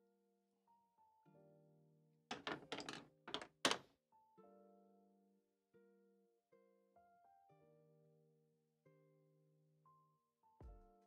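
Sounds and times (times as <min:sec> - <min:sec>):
objects knocking on desk: 0:02.3 - 0:03.8.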